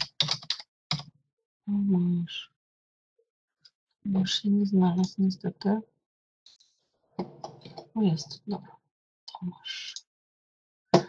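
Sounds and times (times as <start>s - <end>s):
keyboard typing: 0.0s - 1.0s
person speaking: 4.1s - 5.8s.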